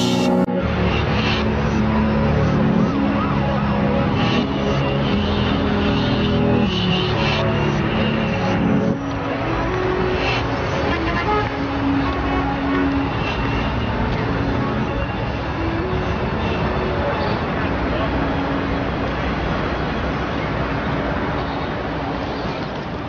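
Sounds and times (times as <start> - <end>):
indistinct voices: 0.0 - 19.4
music: 0.0 - 20.7
traffic noise: 0.0 - 23.0.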